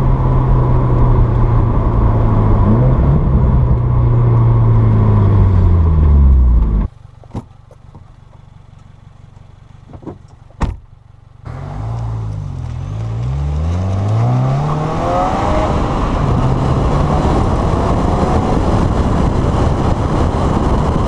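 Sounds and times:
car engine and exhaust: 0.0 - 21.0.

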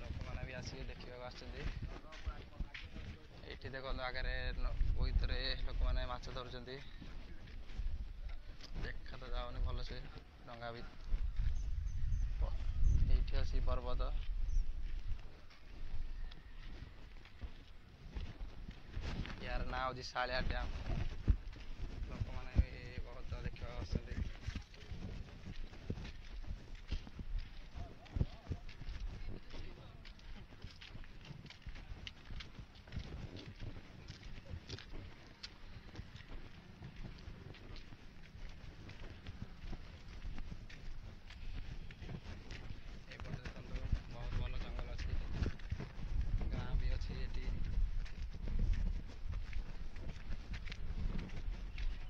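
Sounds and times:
low rumble on microphone: 0.0 - 19.7, 20.3 - 52.0.

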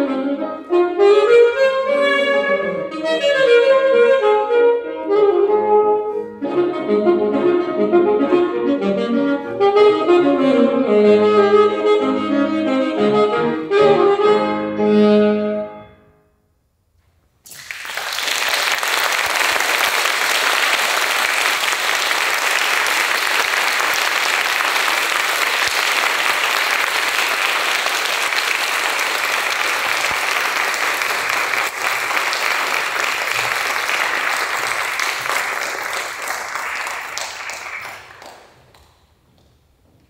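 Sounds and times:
audience applauding: 17.5 - 39.0.

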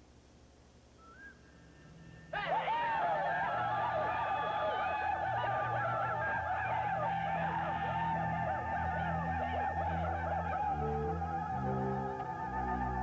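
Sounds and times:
low steady drone: 1.4 - 13.0
men whooping and ululating: 2.3 - 13.0.

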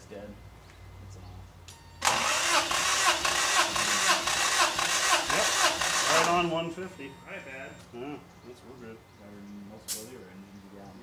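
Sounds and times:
starter motor cranking engine: 2.0 - 6.8.

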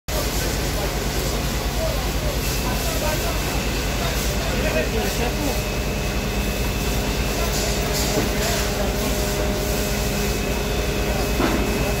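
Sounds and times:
faint voices: 0.1 - 12.0
mechanical drone with whine: 0.1 - 12.0.

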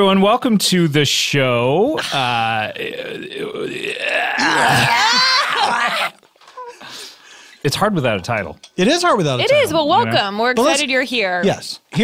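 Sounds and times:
person making croaky strained noise: 1.9 - 6.2.

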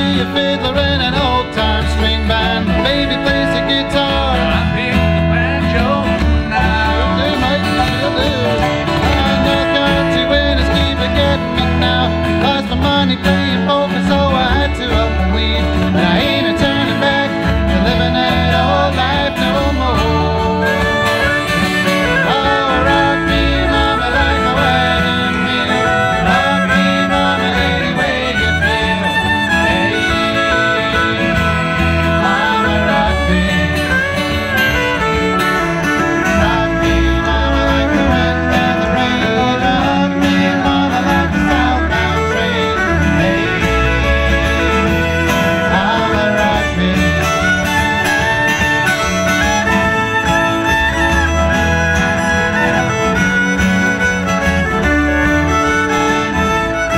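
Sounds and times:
banjo: 0.0 - 56.9
fiddle: 0.0 - 56.9
person singing: 0.0 - 56.9
strummed acoustic guitar: 0.0 - 56.9.

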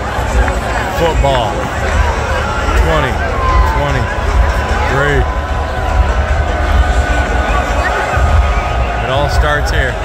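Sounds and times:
crowd noise: 0.0 - 10.0
music over public-address system: 0.0 - 10.0.

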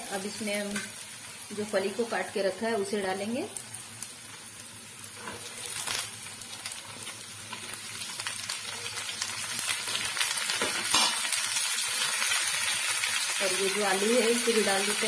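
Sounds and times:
beans sizzling in oil: 0.0 - 15.0.

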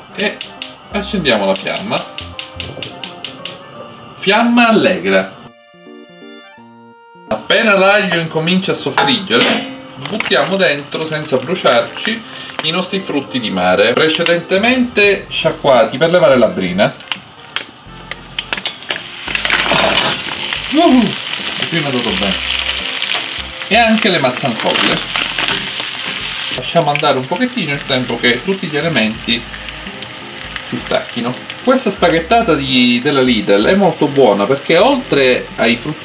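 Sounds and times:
gas hob igniter clicking: 0.1 - 0.8, 1.5 - 3.6, 17.0 - 20.2
seafood sizzling in oil: 8.7 - 14.6, 16.5 - 36.0
oil crackling: 8.7 - 14.9, 16.2 - 36.0.

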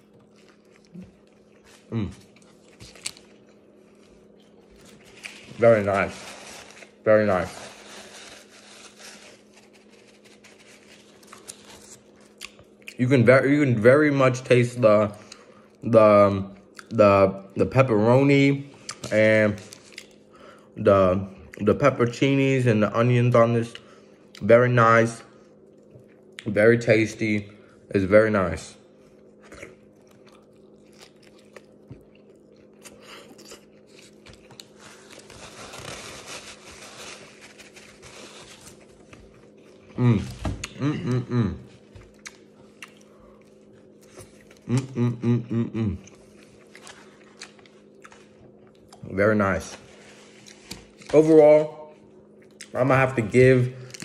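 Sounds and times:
person chewing: 0.0 - 7.0, 7.7 - 13.0, 18.7 - 20.3, 29.0 - 49.1, 50.3 - 51.1, 52.2 - 52.8
low steady hum: 0.0 - 54.0
chewing with closed lips: 29.0 - 34.8, 42.0 - 45.0.

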